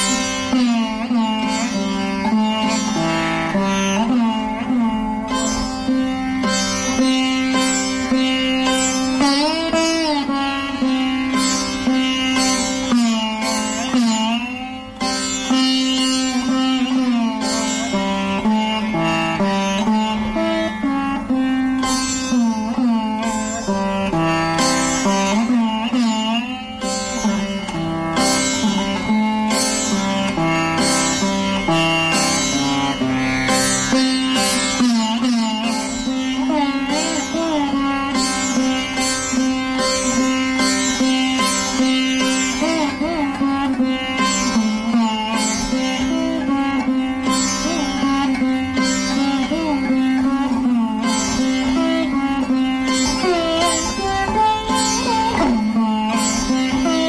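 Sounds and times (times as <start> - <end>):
sitar plucked notes: 0.0 - 57.0.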